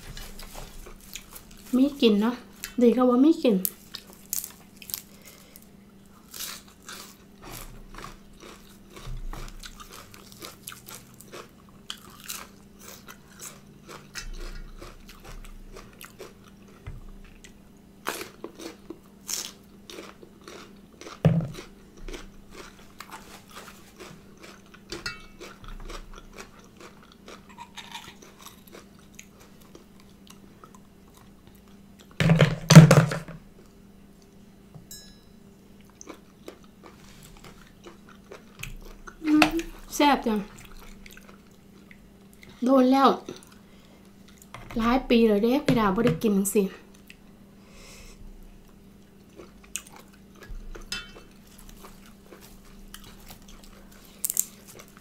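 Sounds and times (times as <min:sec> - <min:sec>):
chewing crunchy vegetables: 0:00.0 - 0:02.8, 0:03.6 - 0:32.2, 0:35.8 - 0:44.5, 0:48.5 - 0:55.0
faint steady hum: 0:00.0 - 0:55.0.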